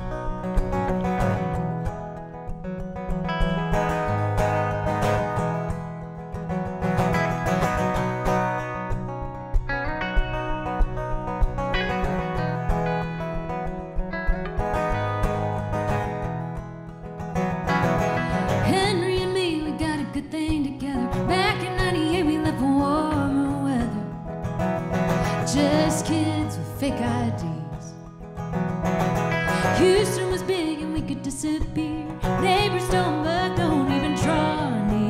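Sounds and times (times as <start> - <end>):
acoustic guitar: 0.0 - 35.0
electric guitar: 0.0 - 35.0.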